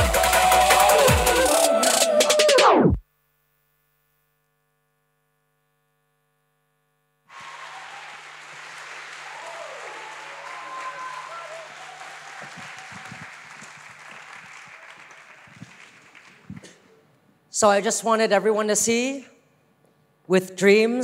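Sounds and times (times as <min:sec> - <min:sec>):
whoops and cheers: 0:00.0 - 0:02.6, 0:07.3 - 0:08.5, 0:09.1 - 0:13.7
audience applauding: 0:07.3 - 0:16.9.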